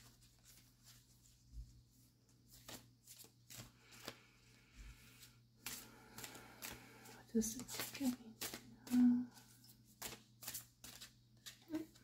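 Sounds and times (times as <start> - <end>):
cards shuffled by hand: 0.0 - 12.0.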